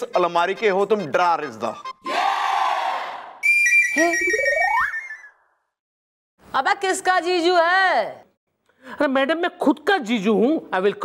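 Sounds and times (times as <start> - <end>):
rising slide whistle: 3.4 - 5.4
high steady whistle tone: 3.4 - 5.5.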